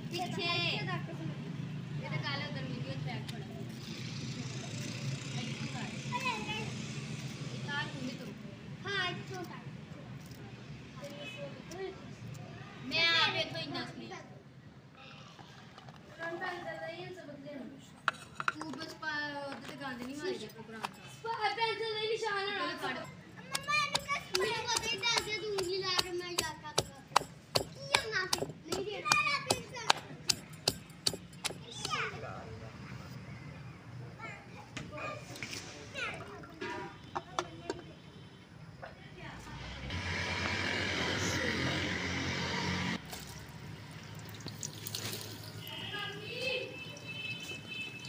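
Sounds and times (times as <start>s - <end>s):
pestle pounding in clay mortar: 23.5s - 32.0s.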